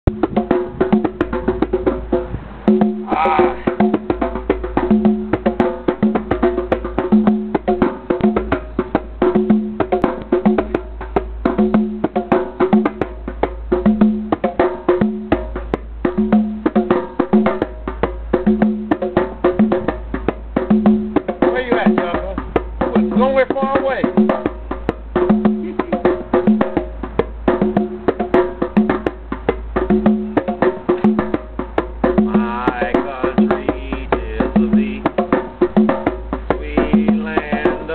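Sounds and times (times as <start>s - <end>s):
hand drums playing fast rhythm: 0.0s - 37.9s.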